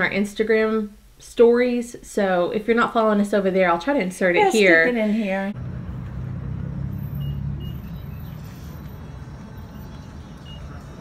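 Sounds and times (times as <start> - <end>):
road traffic rumble: 5.5 - 11.0
faint high beeps: 6.9 - 9.0.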